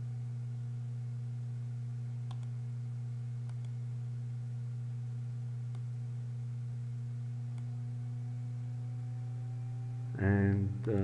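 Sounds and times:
low electrical hum: 0.0s - 11.0s
faint mouse clicks: 2.2s - 2.6s, 3.4s - 3.8s, 5.7s - 5.9s.

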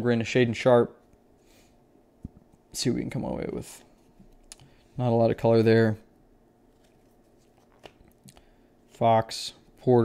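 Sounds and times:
trading cards rustling: 6.6s - 8.3s.

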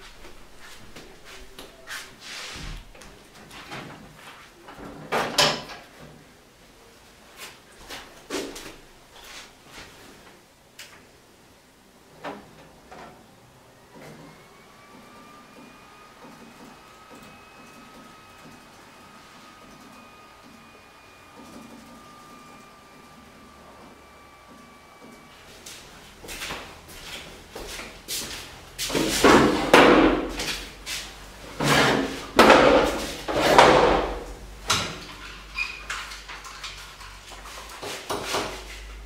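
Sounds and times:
computer whine spinning up: 13.7s - 25.6s.

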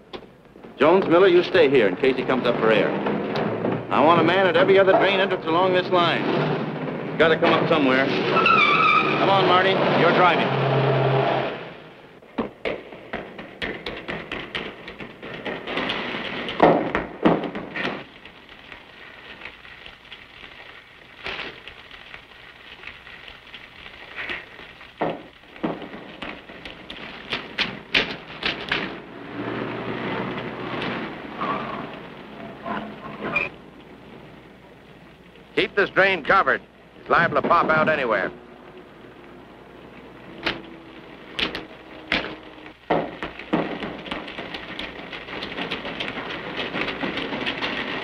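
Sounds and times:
car engine passing: 6.1s - 12.1s, 29.0s - 33.1s.

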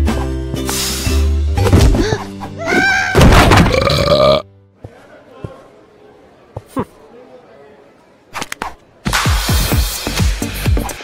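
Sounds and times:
background music: 0.0s - 4.9s, 9.1s - 11.0s.

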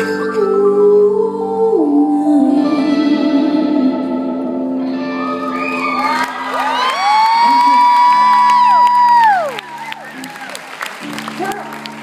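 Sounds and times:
audience whooping and cheering: 5.3s - 12.0s.

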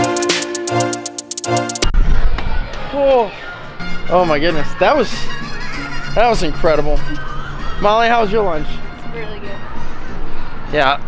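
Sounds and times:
electronic music with a beat: 0.0s - 1.9s
street noise: 1.5s - 11.0s.

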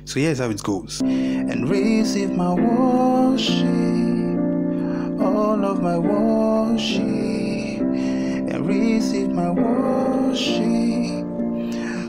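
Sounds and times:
electronic keyboard chords: 1.0s - 12.0s
person singing: 1.0s - 12.0s.

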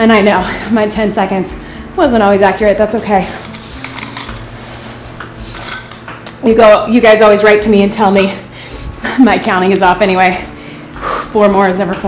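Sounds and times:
water bottle clicks and rubbing: 3.4s - 4.5s.

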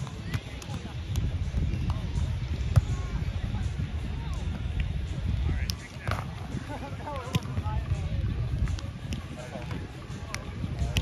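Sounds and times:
wind on microphone: 0.0s - 11.0s.

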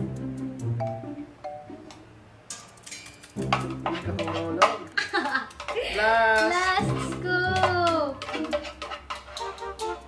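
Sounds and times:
background music: 0.0s - 10.0s
people laughing: 4.8s - 6.2s.

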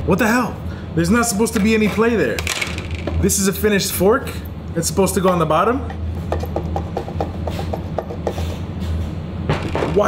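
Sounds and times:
plastic parts clacking together: 2.3s - 3.2s.

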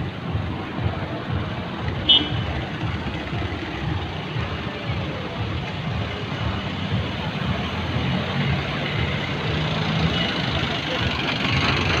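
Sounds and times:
road noise rumble: 0.0s - 12.0s
van engine driving by: 2.6s - 12.0s.

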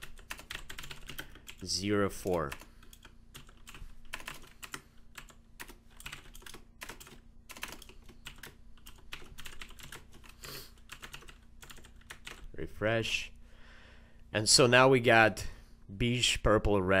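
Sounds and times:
computer keyboard typing: 0.0s - 12.5s.

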